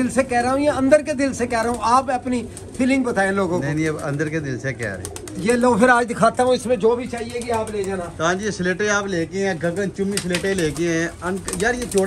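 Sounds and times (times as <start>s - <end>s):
man's voice: 0.0s - 12.0s
pigeons cooing: 0.0s - 12.0s.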